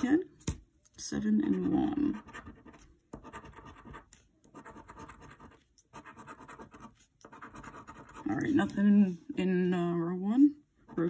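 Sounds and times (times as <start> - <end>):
coin scratching lottery ticket: 1.5 - 8.4.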